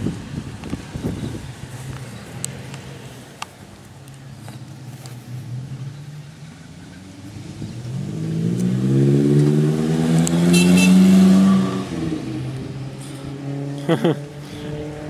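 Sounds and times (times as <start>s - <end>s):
car engine idling and revving: 0.0s - 15.0s.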